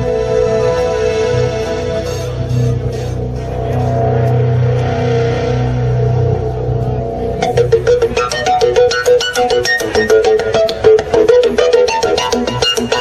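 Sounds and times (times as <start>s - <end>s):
plucked guitar notes: 0.0s - 13.0s
rock band playing: 0.0s - 13.0s.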